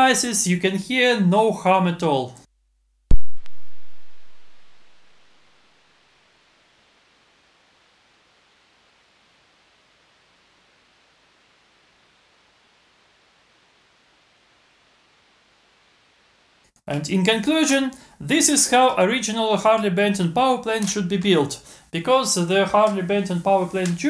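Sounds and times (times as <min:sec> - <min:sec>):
faint steady hiss: 0:03.4 - 0:24.0.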